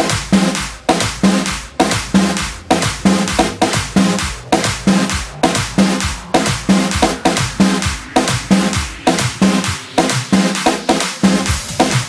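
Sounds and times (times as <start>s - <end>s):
music with heavy drum beat: 0.0s - 12.0s.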